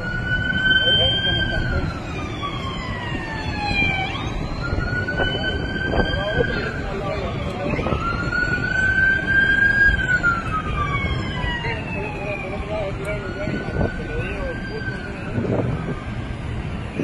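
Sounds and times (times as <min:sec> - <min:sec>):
emergency siren wailing: 0:00.0 - 0:17.0
faint voices: 0:04.6 - 0:16.2.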